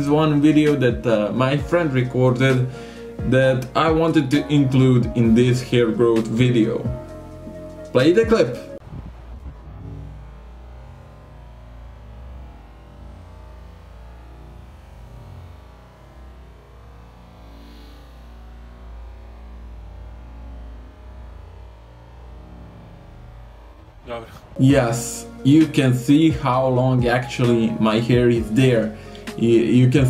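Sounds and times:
wind on microphone: 8.8 - 10.1.

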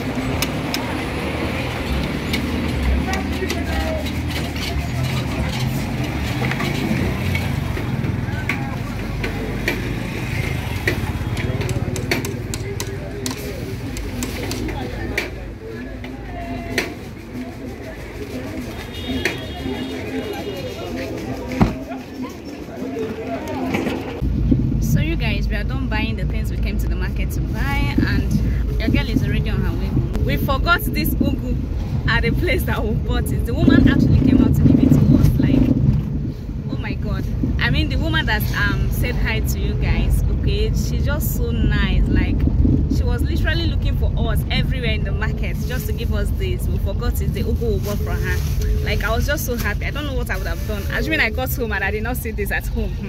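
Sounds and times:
voices in background: 0.0 - 24.2.

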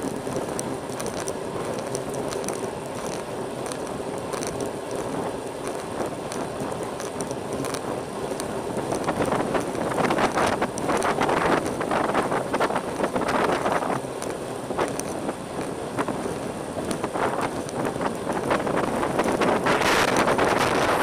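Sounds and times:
bicycle tyres rolling on asphalt: 0.0 - 21.0
wind buffeting microphone: 0.0 - 21.0.

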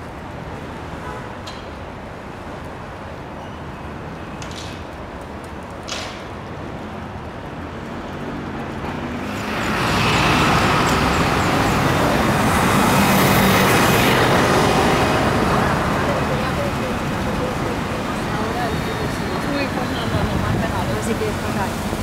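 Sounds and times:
vehicle passing: 8.1 - 22.0.

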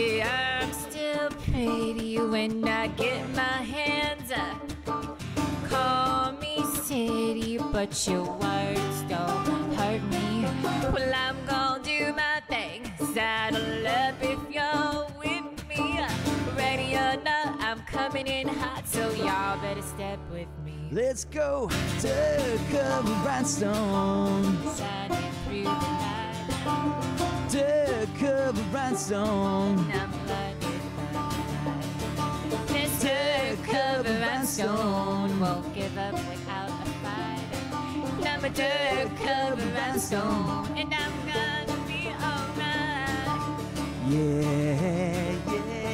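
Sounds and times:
woman singing with vibrato: 0.0 - 4.7, 5.5 - 20.9, 24.5 - 26.9, 29.1 - 31.0, 32.6 - 43.4
acoustic guitar: 0.0 - 45.9
banjo: 0.0 - 45.9.

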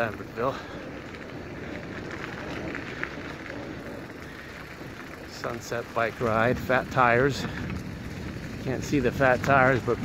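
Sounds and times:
bicycle tyres rumbling on gravel: 0.0 - 10.0
wind on microphone: 0.0 - 10.0.

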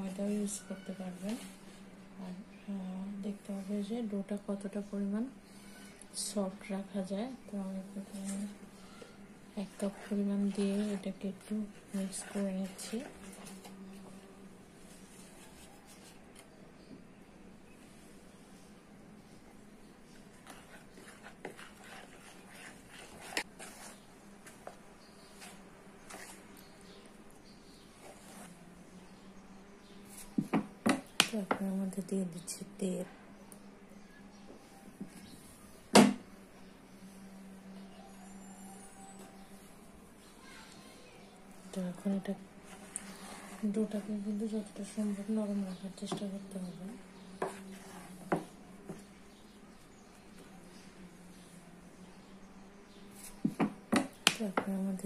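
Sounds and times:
hand squelching dough in bowl: 20.2 - 26.6
dough knocking against plastic bowl: 53.4 - 54.7.

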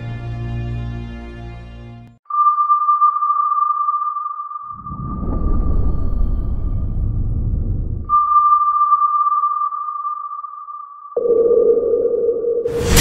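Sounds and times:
high sonar-like tone: 2.2 - 6.8, 8.0 - 13.0
loud explosion blast: 4.8 - 8.1
deep underwater rumble: 4.8 - 8.2
lower tone with rumble: 4.8 - 8.3.

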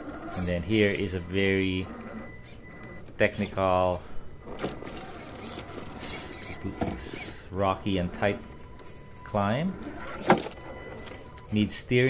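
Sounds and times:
toy car electric motor whirring: 0.0 - 7.4, 8.0 - 11.5.

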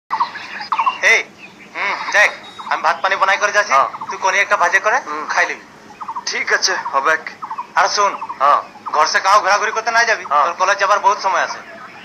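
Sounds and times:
chickens clucking: 0.1 - 12.0
person speaking: 1.0 - 5.6.

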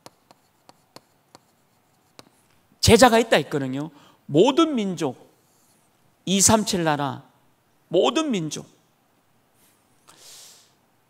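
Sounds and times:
chalk tapping and scratching: 0.0 - 2.5.

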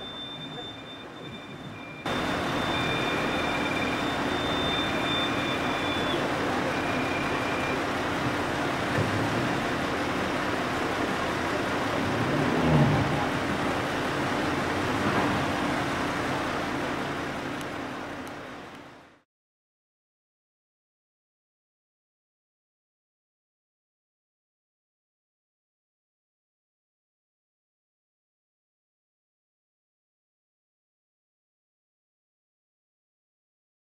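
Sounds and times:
fire engine motor running: 0.0 - 19.2.

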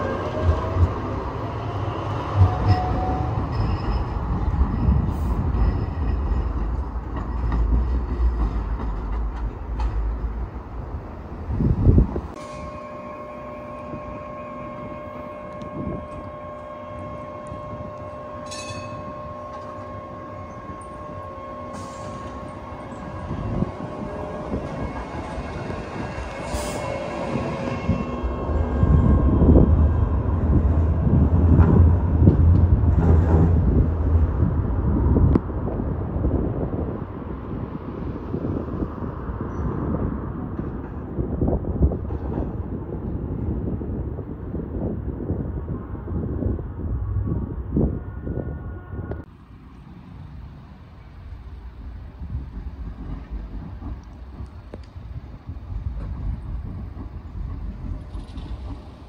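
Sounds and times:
tram wheels rumbling on rail: 0.0 - 59.0.

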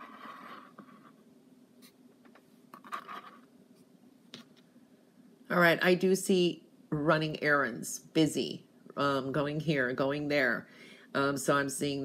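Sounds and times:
ceramic mug scraping on mat: 0.0 - 1.2.

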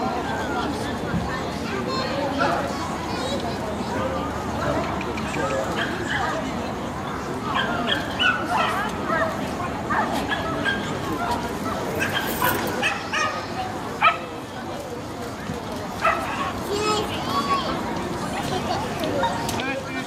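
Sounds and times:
crowd chatter: 0.0 - 20.0
dogs barking and yipping: 7.5 - 13.4.

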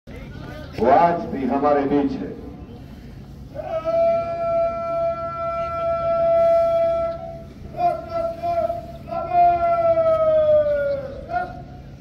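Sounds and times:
bugle holding a long note: 3.6 - 11.7.

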